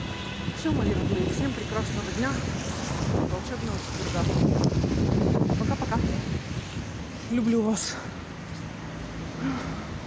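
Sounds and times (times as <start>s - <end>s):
wind buffeting microphone: 0.4s - 7.7s.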